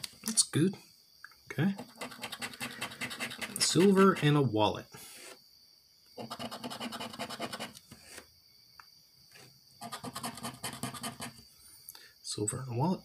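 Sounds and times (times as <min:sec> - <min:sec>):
token scraping lottery ticket: 0:01.8 - 0:04.4, 0:06.2 - 0:07.8.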